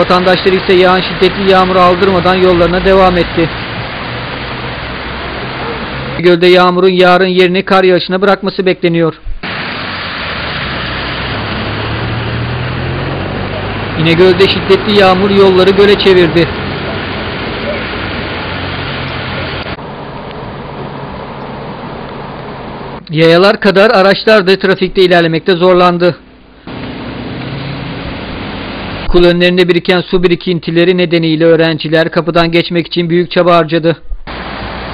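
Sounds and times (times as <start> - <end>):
vehicle engine hum: 0.0 - 6.2, 9.4 - 23.1, 26.2 - 29.2, 34.2 - 34.9
heavy rain: 0.0 - 6.9, 9.4 - 23.0, 26.4 - 29.3, 34.3 - 34.9
water on flooded street: 0.0 - 7.8, 9.4 - 23.0, 24.1 - 30.8, 34.2 - 34.9.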